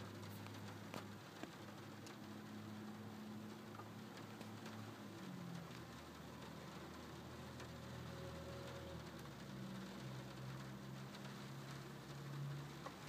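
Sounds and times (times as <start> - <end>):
light rain on glass: 0.0 - 13.0
raindrop ticks: 0.0 - 13.0.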